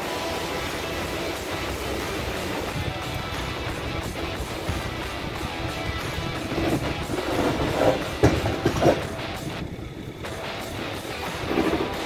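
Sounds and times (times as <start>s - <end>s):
truck rolling over steel bridge: 0.0s - 12.0s
bridge deck clanking: 1.5s - 12.0s
loud knocks: 6.7s - 9.1s.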